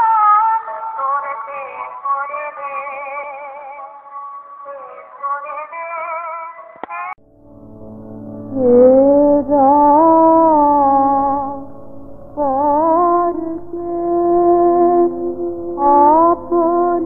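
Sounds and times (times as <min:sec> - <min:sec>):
low sustained drone: 0:07.2 - 0:17.0
high voice singing with vibrato: 0:08.5 - 0:17.0.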